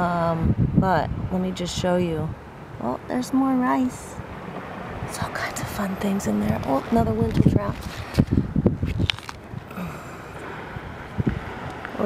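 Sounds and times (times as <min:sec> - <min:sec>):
wind buffeting microphone: 0:00.0 - 0:12.0
rustles: 0:06.4 - 0:10.5.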